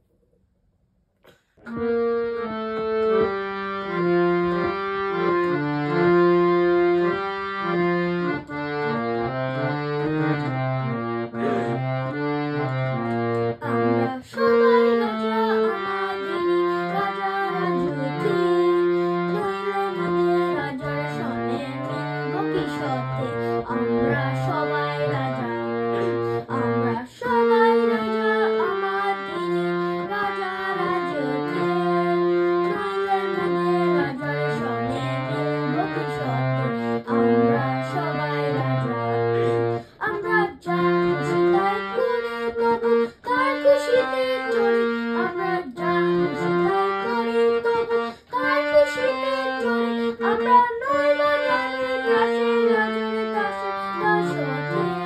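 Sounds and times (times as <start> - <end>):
reed harmonium melody: 1.6 - 55.0.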